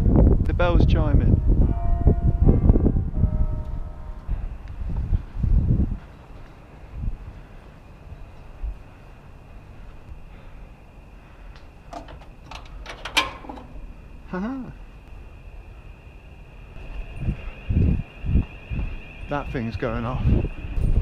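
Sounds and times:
wind rumbling on microphone: 0:00.0 - 0:21.0
footfalls on metal stairs: 0:11.9 - 0:13.8
high alarm tone: 0:13.8 - 0:21.0.

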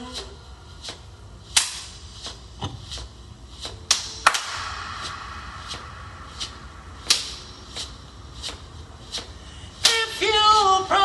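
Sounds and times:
hand percussion slaps: 0:00.1 - 0:10.2.

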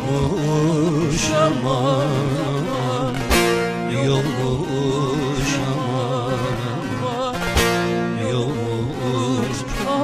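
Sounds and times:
acoustic guitar: 0:00.0 - 0:10.0
folk music on plucked lutes: 0:00.0 - 0:10.0.

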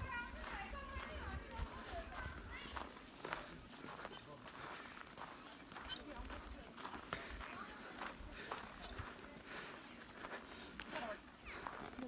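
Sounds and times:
footsteps on packed snow: 0:00.0 - 0:12.0.

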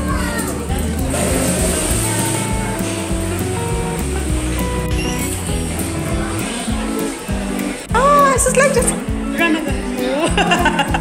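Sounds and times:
background music melody: 0:00.0 - 0:11.0.

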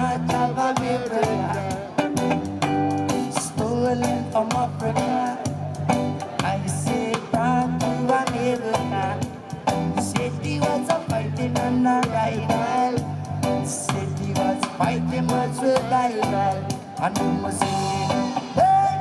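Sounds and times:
guitar: 0:00.0 - 0:19.0
man singing reggae song: 0:00.0 - 0:19.0
rhythmic bass: 0:00.0 - 0:19.0.

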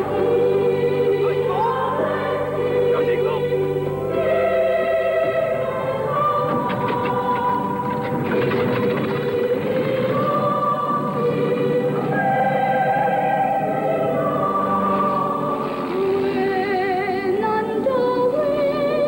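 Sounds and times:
choir singing long notes: 0:00.0 - 0:19.0.

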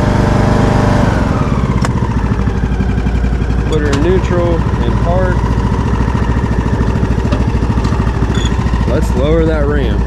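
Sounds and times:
riding lawn mower engine running: 0:00.0 - 0:10.0.

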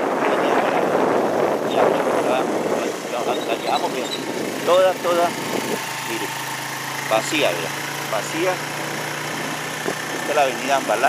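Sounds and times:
vehicle running road noise: 0:00.0 - 0:11.0
man's voice: 0:01.7 - 0:05.4.

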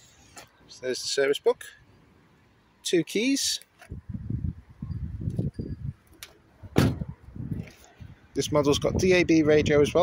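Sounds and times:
car door shutting: 0:06.7 - 0:07.2.

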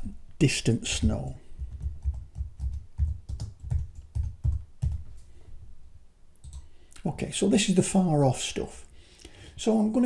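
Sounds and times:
typing on computer keyboard: 0:01.0 - 0:05.0, 0:06.4 - 0:06.7.

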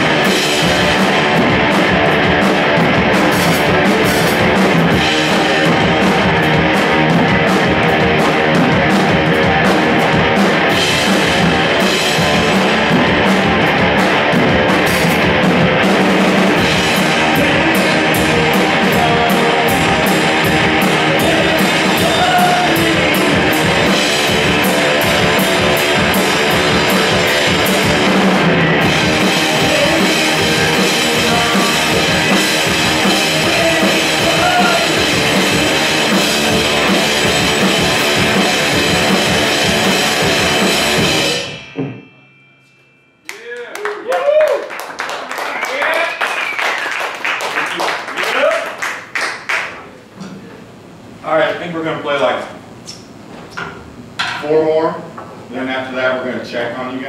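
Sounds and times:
live rock band: 0:00.0 - 0:42.1
cymbal strikes: 0:37.3 - 0:43.5.

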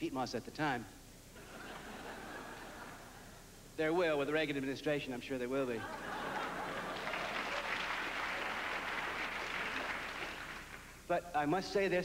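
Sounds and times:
audience applauding: 0:06.4 - 0:11.0.

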